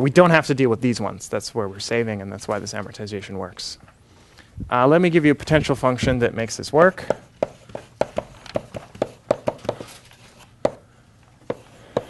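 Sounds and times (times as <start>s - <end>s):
chalk tapping on blackboard: 7.0s - 9.9s, 10.6s - 10.8s, 11.4s - 12.0s.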